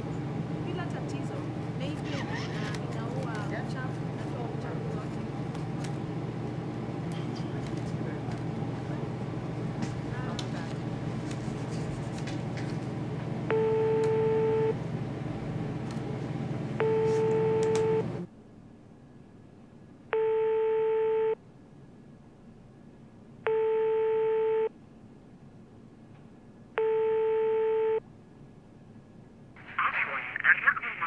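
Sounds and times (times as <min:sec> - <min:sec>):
telephone ringback tone beeps: 0:13.5 - 0:14.8, 0:16.8 - 0:18.1, 0:20.2 - 0:21.4, 0:23.5 - 0:24.7, 0:26.8 - 0:28.0.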